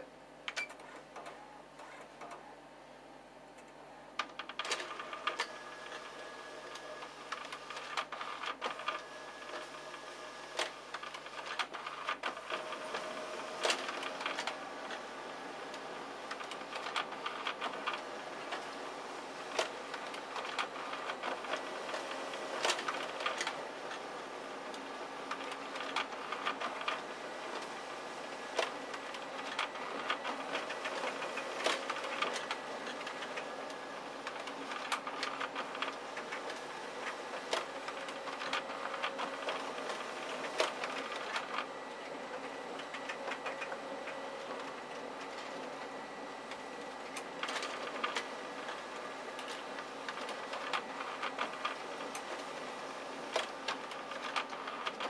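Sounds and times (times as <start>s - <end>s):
printer running: 0.0s - 55.0s
paper handling clicks and clatters: 4.2s - 15.1s, 15.7s - 18.8s, 19.5s - 55.0s
document feeder drawing paper: 4.3s - 55.0s.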